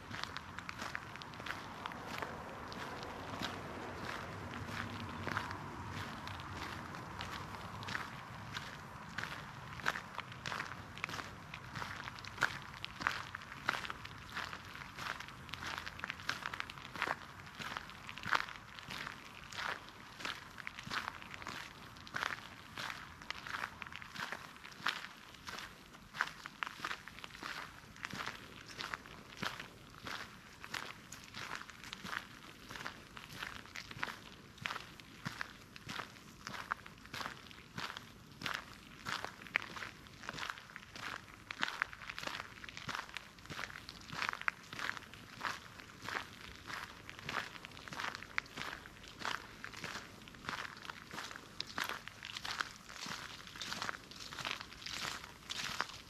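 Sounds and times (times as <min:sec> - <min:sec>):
footsteps on gravel and dry leaves: 0:00.0 - 0:56.0.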